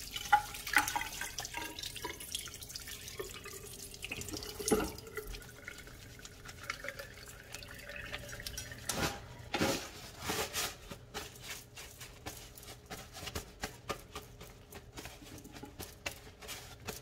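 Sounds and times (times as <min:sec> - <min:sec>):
tap water running into basin: 0:00.0 - 0:09.4.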